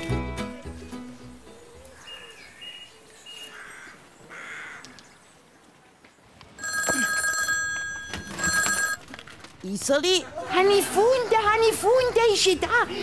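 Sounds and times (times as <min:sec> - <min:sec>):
telephone ringing: 0:06.6 - 0:09.1.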